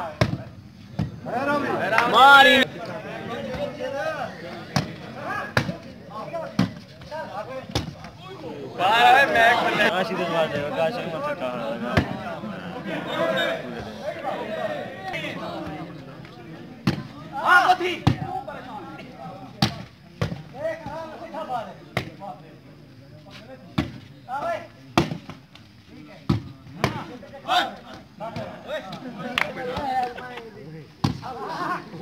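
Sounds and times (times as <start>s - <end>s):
players and spectators shouting: 1.2s - 6.5s, 7.2s - 19.6s, 26.8s - 32.0s.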